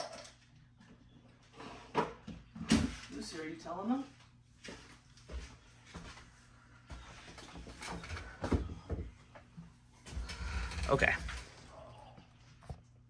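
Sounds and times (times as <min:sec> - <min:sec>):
objects knocking and rustling: 0:06.9 - 0:11.7.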